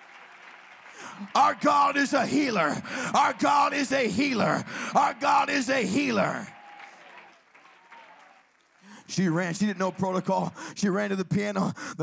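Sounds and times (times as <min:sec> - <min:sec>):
faint applause: 0:00.0 - 0:10.7.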